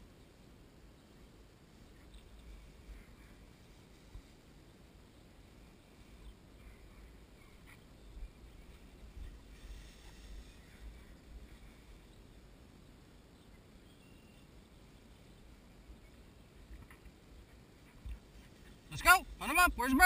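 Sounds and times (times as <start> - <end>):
rustling through dry grass: 1.7 - 12.7.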